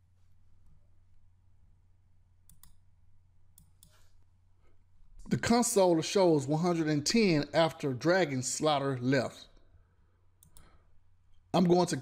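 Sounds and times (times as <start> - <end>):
low steady hum: 0.0 - 12.0
computer mouse clicks: 2.5 - 2.8, 3.6 - 4.1, 10.4 - 10.8.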